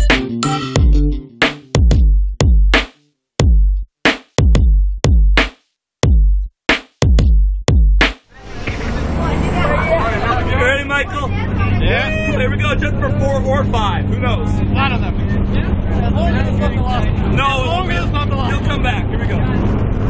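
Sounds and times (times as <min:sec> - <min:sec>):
plane engine drone: 0:08.3 - 0:20.0
people chatting: 0:08.4 - 0:19.9.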